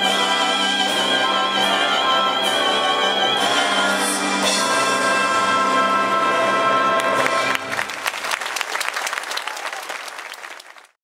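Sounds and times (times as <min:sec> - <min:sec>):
audience applause: 0:07.2 - 0:11.0.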